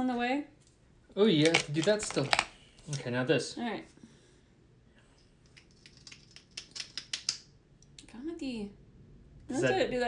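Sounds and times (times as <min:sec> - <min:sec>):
plastic tube clicking: 0:05.5 - 0:07.5.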